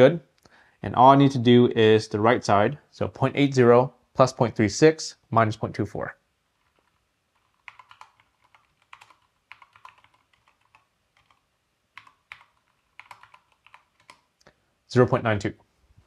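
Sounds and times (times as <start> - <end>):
calculator keys clicking: 6.7 - 11.4, 12.0 - 14.2.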